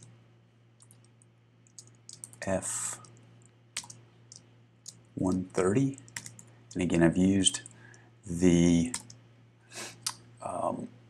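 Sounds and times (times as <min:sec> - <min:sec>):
low steady hum: 0:00.0 - 0:11.0
keyboard keystrokes: 0:01.7 - 0:02.4, 0:03.8 - 0:06.8, 0:08.9 - 0:09.2.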